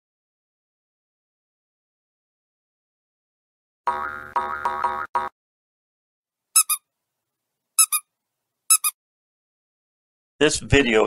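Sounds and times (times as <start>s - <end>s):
high double chirps: 6.6s - 6.8s.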